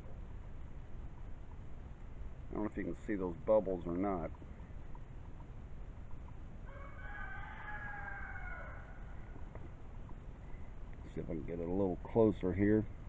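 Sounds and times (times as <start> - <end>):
faint rooster crowing: 6.6 - 9.8.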